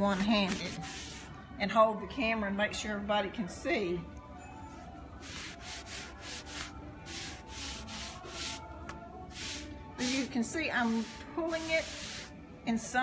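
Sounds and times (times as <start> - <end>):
gauze pad rubbing wooden frame: 0.0 - 1.3, 5.2 - 8.6, 9.3 - 12.3.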